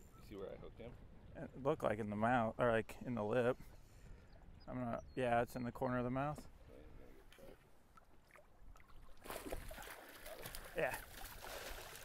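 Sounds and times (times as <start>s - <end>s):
water splashing and sloshing: 7.3s - 12.0s.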